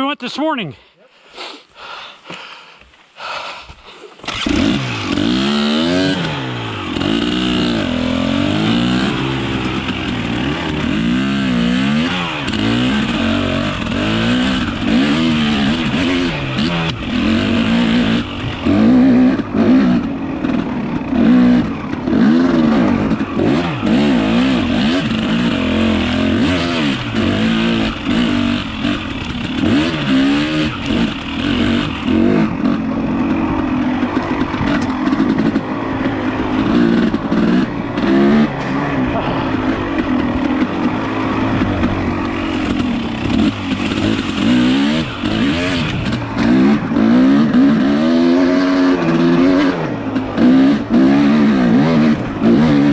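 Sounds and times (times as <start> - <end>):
dirt bike engine revving: 4.2 - 52.9.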